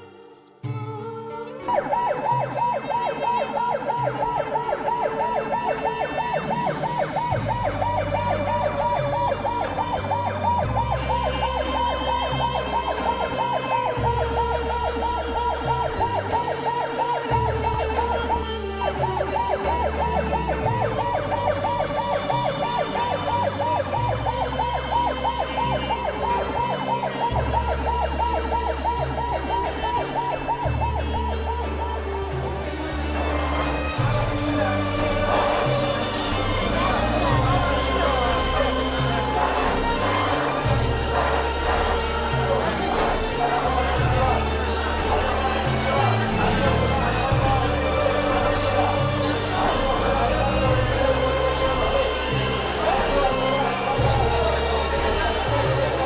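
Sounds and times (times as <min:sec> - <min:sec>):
siren yelping: 0:01.6 - 0:56.0.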